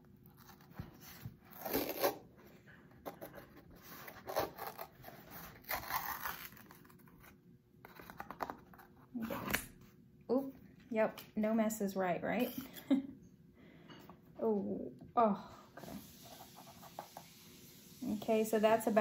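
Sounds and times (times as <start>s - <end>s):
paper seal tearing: 4.1s - 7.0s.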